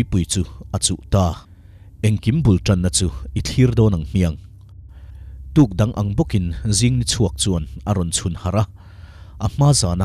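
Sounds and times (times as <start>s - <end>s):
person speaking: 0.0s - 1.4s, 2.0s - 4.4s, 5.5s - 8.7s
low steady hum: 0.0s - 10.0s.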